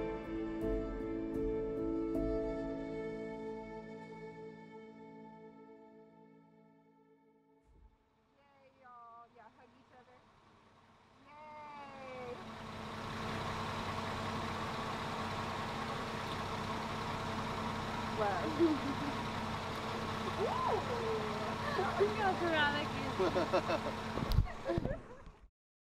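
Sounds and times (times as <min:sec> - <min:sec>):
car engine idling: 0:09.2 - 0:25.4.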